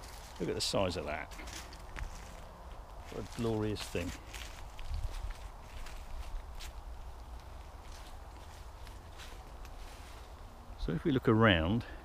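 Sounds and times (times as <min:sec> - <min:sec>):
footsteps on leaf litter: 0:00.0 - 0:10.5.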